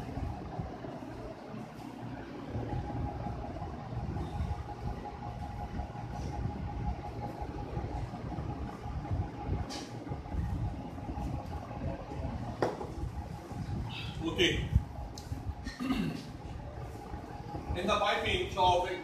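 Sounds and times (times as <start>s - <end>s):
low rumbling room noise: 0.0s - 19.0s
thin steady whine: 0.0s - 19.0s.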